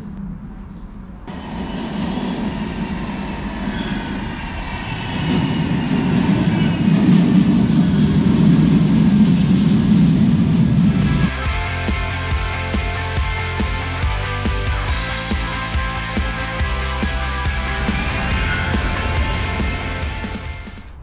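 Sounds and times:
tram wheels rumbling on rails: 0.0s - 21.0s.

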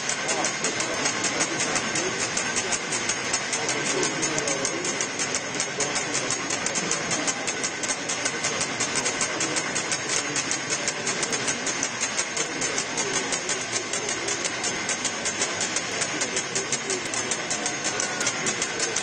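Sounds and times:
crowd murmur in echoing church: 0.0s - 19.0s
fast steady ticking: 0.0s - 19.0s.

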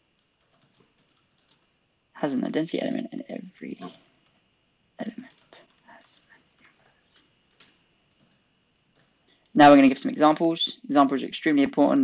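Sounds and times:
computer keyboard typing: 0.2s - 1.7s, 3.8s - 4.4s, 5.0s - 9.2s.

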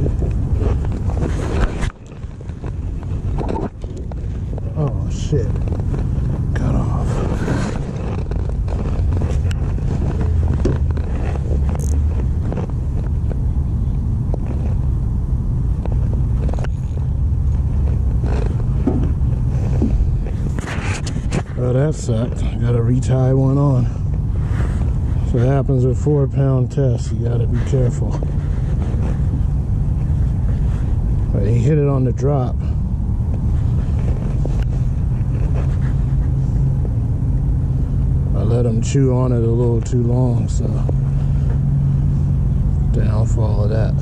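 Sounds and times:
low outdoor rumble: 0.0s - 44.0s
wind buffeting microphone: 0.0s - 44.0s.

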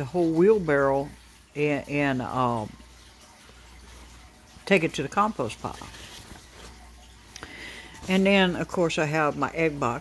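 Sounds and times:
phone and paper handling: 5.6s - 6.9s.

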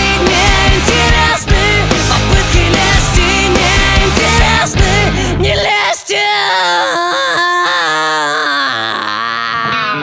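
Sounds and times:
bass and drums: 0.0s - 5.6s
rock lead vocal singing long note: 0.0s - 10.0s.

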